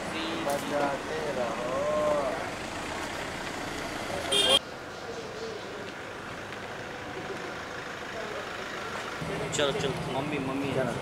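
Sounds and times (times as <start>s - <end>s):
street noise: 0.0s - 11.0s.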